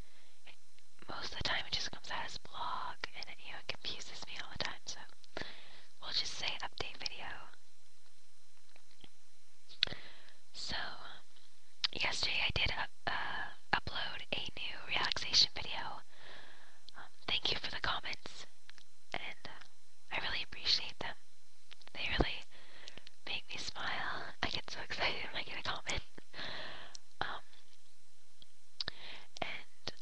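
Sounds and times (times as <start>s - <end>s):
faint low hum: 0.0s - 30.0s
person whispering: 1.0s - 5.1s, 6.0s - 7.6s, 10.6s - 11.2s, 11.8s - 16.0s, 16.9s - 18.5s, 19.1s - 21.2s, 21.9s - 22.5s, 23.3s - 26.1s, 27.2s - 27.5s, 28.8s - 30.0s.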